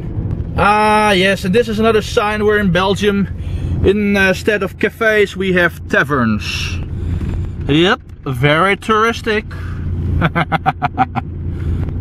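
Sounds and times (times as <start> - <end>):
low drone inside moving car: 0.0 - 12.0
man laughing: 10.2 - 11.2.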